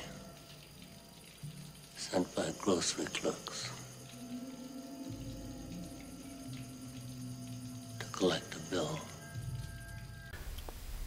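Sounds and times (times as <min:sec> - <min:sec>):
low ominous drone: 0:00.0 - 0:10.4.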